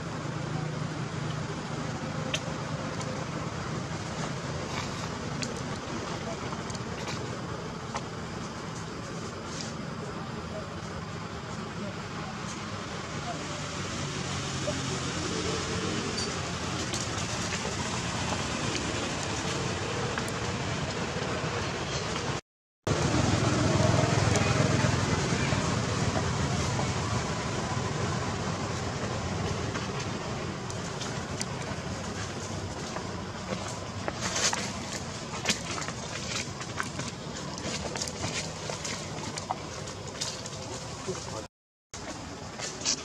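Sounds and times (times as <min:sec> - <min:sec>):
low rumble of distant traffic: 0:00.0 - 0:43.0.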